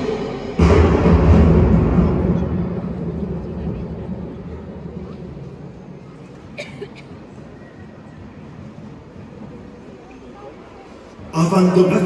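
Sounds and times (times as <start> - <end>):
marching band low hit: 0.0 - 6.5.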